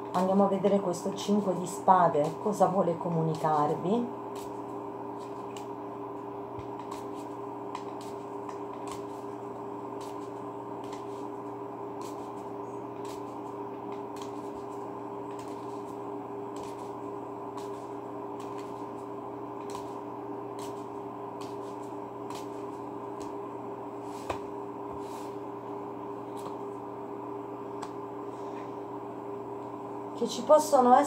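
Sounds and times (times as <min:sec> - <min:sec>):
steady low hum: 0:00.0 - 0:31.0
playing cards being shuffled: 0:01.4 - 0:25.4, 0:26.2 - 0:26.8.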